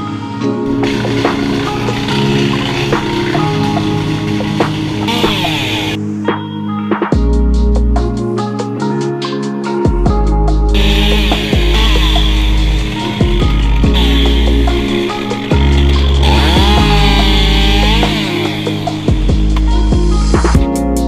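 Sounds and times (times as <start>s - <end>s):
background music: 0.0s - 21.0s
chainsaw cutting wood: 0.7s - 6.0s, 10.8s - 19.9s.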